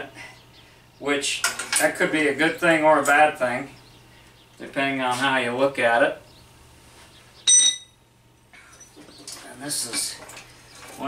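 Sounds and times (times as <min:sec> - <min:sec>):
sharp metallic clink: 0:07.5 - 0:08.0.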